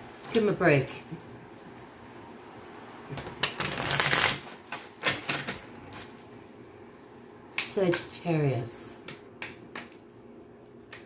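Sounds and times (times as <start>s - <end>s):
cards being shuffled: 3.1s - 5.0s.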